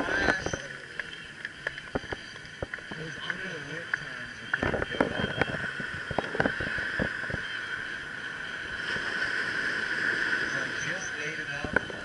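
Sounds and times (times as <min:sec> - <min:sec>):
small waves washing up beach: 0:00.0 - 0:12.0.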